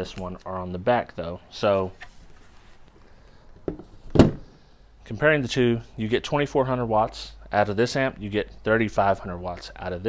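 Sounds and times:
amplifier thunk on table: 0:03.7 - 0:04.5.

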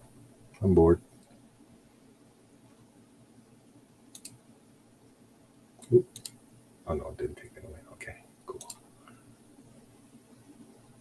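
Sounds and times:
sharp clicks: 0:04.1 - 0:04.4, 0:05.8 - 0:06.4, 0:08.5 - 0:08.8
low wordless voice sounds: 0:06.9 - 0:08.7.

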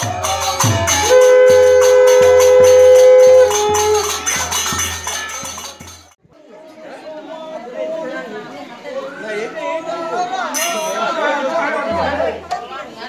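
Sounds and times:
drum strokes: 0:00.0 - 0:06.2
people talking: 0:00.0 - 0:13.0
long held note: 0:00.9 - 0:04.2.

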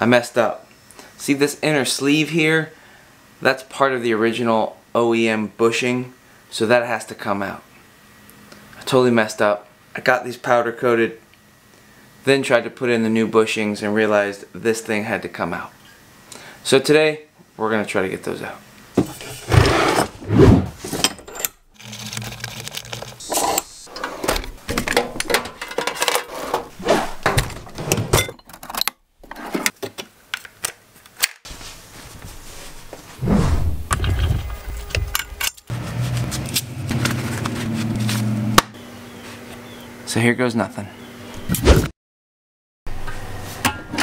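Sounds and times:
tools and hardware clattering: 0:20.8 - 0:30.0, 0:33.9 - 0:35.7.

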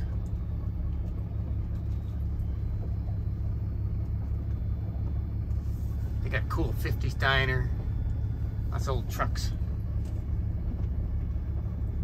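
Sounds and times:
road noise inside cab: 0:00.0 - 0:12.0
truck engine rumble: 0:00.0 - 0:12.0.

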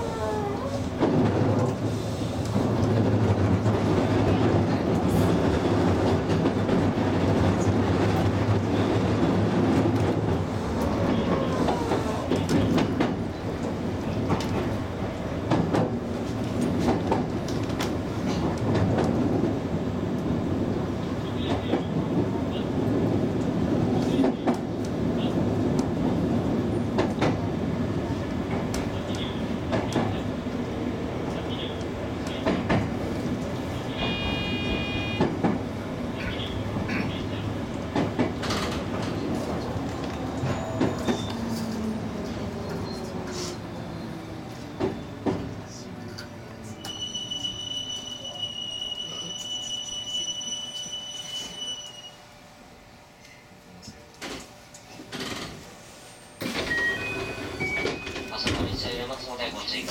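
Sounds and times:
train low hum: 0:00.0 - 0:59.9
train clatter: 0:00.4 - 0:43.7, 0:44.4 - 0:51.8, 0:54.1 - 0:55.8, 0:56.4 - 0:59.9.

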